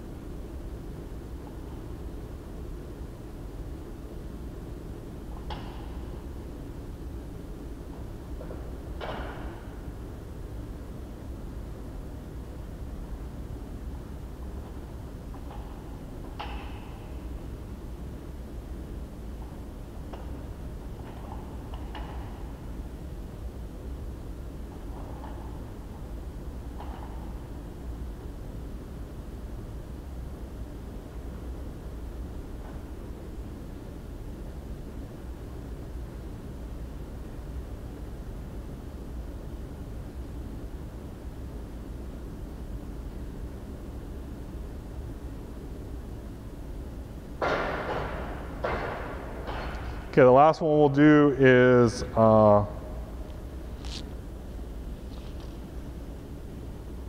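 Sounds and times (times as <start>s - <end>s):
low room hum: 0.0s - 57.0s.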